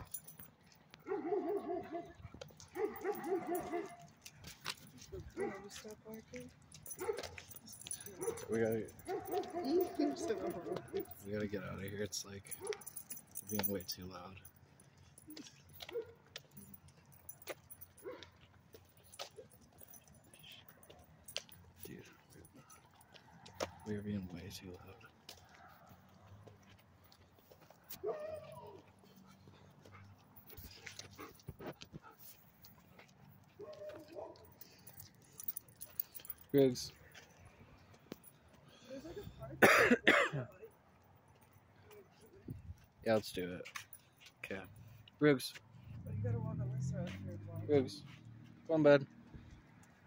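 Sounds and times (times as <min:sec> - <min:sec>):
light metallic jingling: 0:00.0 - 0:50.0
man coughing: 0:39.5 - 0:40.7.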